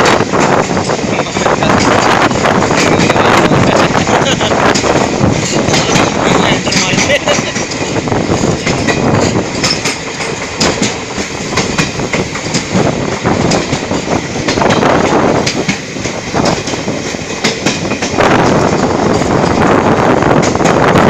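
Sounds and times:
sharp clacks of train wheels: 0.0s - 21.0s
train wheels rumbling on rail: 0.0s - 21.0s.

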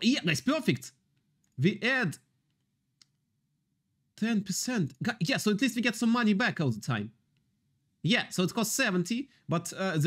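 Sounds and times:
computer mouse click: 2.4s - 3.2s.

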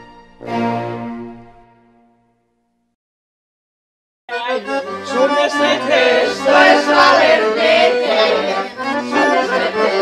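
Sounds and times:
accordion folk tune: 0.0s - 2.0s, 4.3s - 10.0s
people singing along: 5.2s - 10.0s.

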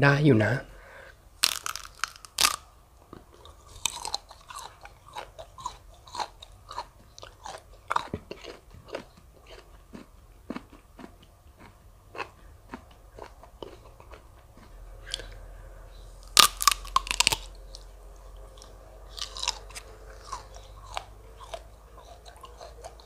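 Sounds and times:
loud bite crunch: 1.4s - 2.6s, 3.2s - 15.4s, 16.2s - 17.8s, 18.6s - 23.0s
chewing with crunches: 1.4s - 23.0s.

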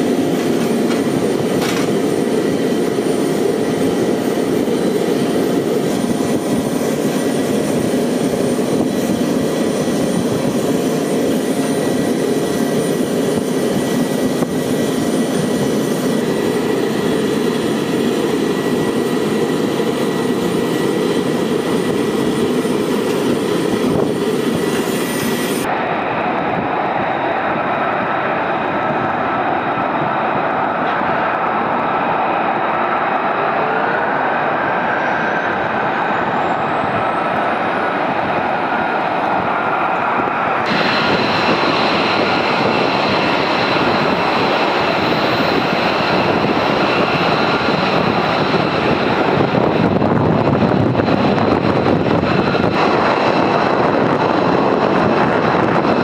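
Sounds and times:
jet engines roaring: 0.0s - 56.0s.

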